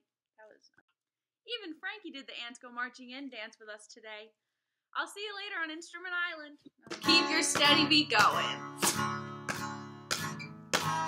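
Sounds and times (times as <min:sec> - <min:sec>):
acoustic guitar strumming: 0:07.0 - 0:11.0.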